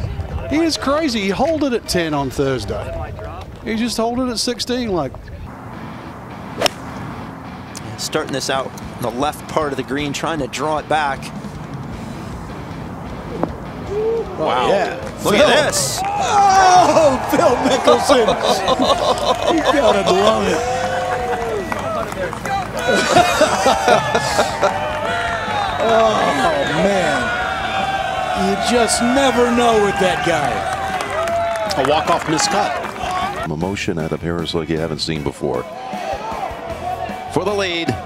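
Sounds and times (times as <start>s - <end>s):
men talking: 0.2s - 5.5s, 7.7s - 11.6s, 13.3s - 38.0s
golf club striking ball: 6.5s - 7.1s
men laughing: 13.9s - 31.0s.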